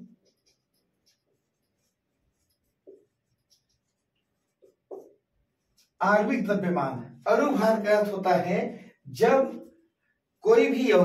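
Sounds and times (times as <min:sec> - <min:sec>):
marker pen scratching on whiteboard: 0:00.0 - 0:06.0.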